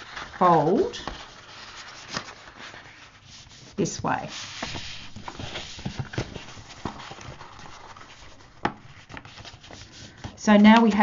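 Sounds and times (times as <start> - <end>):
paper rustling and rubbing: 0.0 - 11.0.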